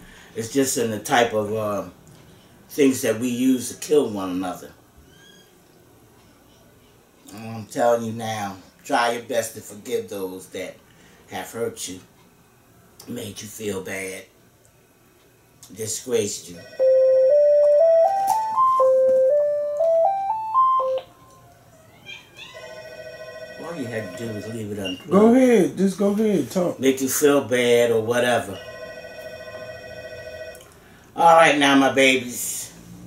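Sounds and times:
steady electronic tone: 0:16.8 - 0:21.3
electronic beeping melody: 0:16.8 - 0:21.5.

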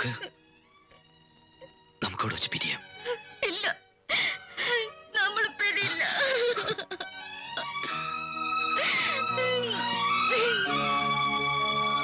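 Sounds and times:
woman crying and wailing: 0:03.1 - 0:05.0, 0:05.8 - 0:11.0.

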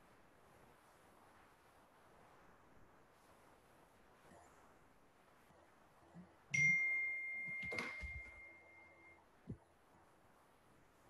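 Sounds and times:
high-pitched chime: 0:06.6 - 0:09.2.

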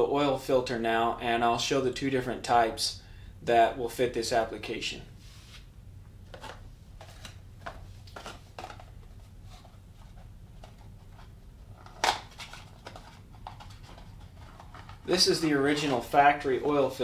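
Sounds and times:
cardboard packaging rustles: 0:06.3 - 0:17.0.

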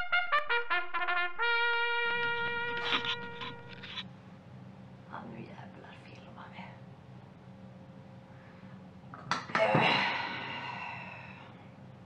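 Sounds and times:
held trumpet note: 0:00.0 - 0:04.0.

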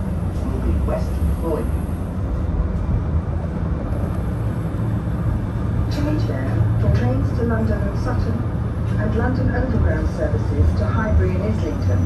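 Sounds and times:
traffic rumble: 0:00.0 - 0:12.0
wind: 0:00.0 - 0:12.0.

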